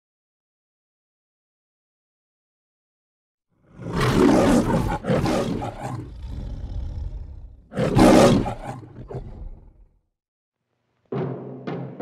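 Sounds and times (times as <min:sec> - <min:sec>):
lion roaring: 0:03.6 - 0:09.9.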